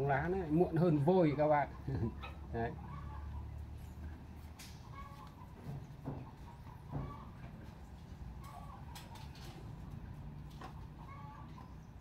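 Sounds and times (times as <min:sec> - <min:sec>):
chickens clucking softly: 0:00.2 - 0:12.0
chicken calls: 0:00.8 - 0:12.0.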